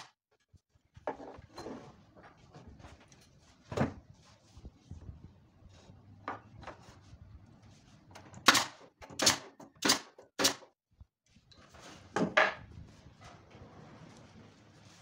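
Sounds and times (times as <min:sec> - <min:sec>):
pneumatic nailer firing: 0:08.4 - 0:10.7.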